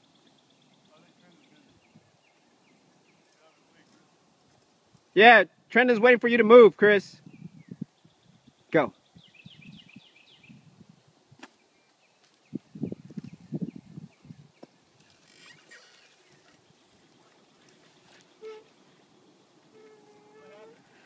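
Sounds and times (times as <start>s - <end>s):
birds chirping: 0.0s - 4.3s, 7.2s - 21.0s.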